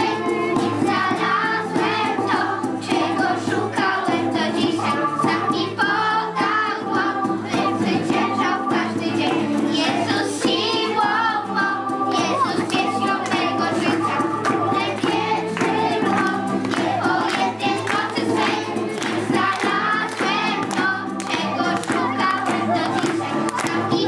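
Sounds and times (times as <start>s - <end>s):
acoustic guitar: 0.0s - 24.0s
children singing: 0.0s - 24.0s.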